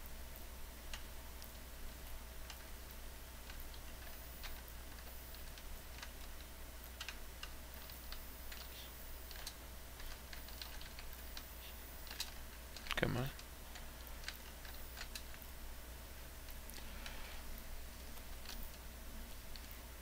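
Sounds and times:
low hum: 0.0s - 20.0s.

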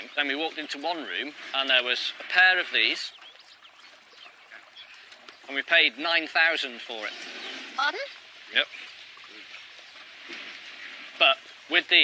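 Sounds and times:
faint bird chirps: 2.9s - 5.6s.

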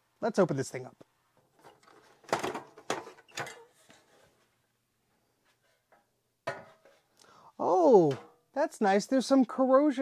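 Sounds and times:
metal cover clattering: 5.9s - 7.0s.

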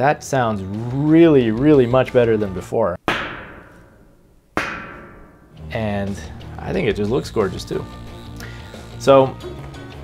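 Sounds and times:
steel plate struck ringing: 3.1s - 5.7s.

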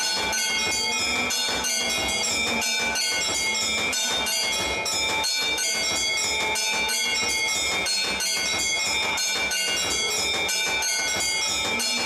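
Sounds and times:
temple bells ringing: 0.0s - 12.0s.

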